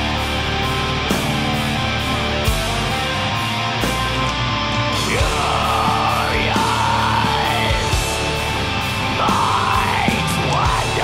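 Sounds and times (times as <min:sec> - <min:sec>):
black metal band playing: 0:00.0 - 0:11.0
harsh yelled vocal: 0:04.9 - 0:11.0.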